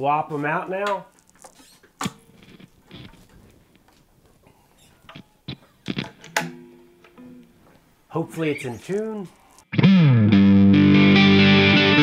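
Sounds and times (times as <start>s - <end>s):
guitar string ringing through amp: 5.2s - 7.6s.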